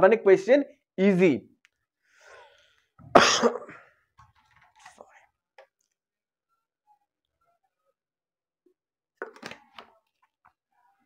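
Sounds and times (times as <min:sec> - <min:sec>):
faint breath: 0:02.0 - 0:03.0
man coughing: 0:03.1 - 0:03.8.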